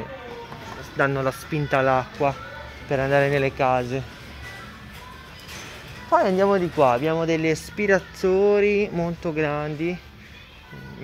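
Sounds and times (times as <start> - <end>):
faint background music: 0.0 - 11.0
store room noise: 0.0 - 11.0.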